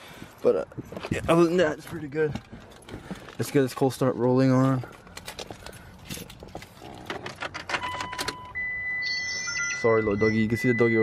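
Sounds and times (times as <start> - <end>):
electronic warning chime: 7.8 - 11.0.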